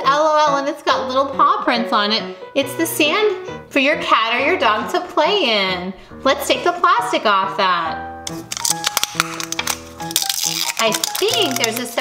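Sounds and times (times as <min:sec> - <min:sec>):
background music with held notes: 0:00.0 - 0:12.0
plastic film crackling being peeled: 0:08.3 - 0:12.0.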